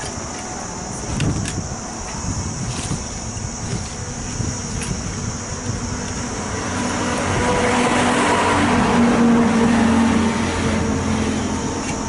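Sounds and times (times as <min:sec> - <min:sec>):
motor vehicle passing by: 0:06.1 - 0:12.0.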